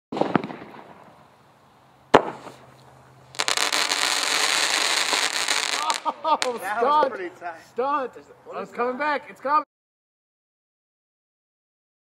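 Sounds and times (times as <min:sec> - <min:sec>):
firework shell bang: 0:00.1 - 0:01.0, 0:02.1 - 0:02.6
firework cannon launching shell: 0:00.1 - 0:01.2, 0:02.1 - 0:05.8
dense crackling hiss: 0:00.2 - 0:09.6.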